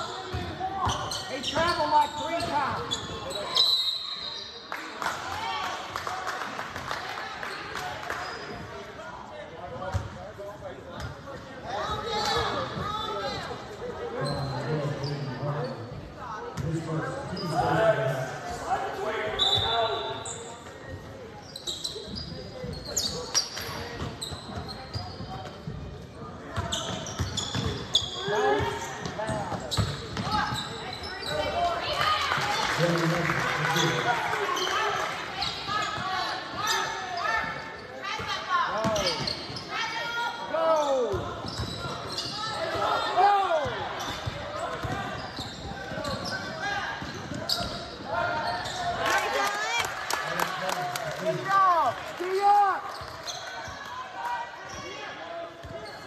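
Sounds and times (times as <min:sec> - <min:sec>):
sneakers squeaking: 0:00.0 - 0:04.8, 0:07.4 - 0:08.8, 0:09.8 - 0:10.2, 0:10.8 - 0:18.2, 0:19.2 - 0:49.8, 0:52.6 - 0:56.0.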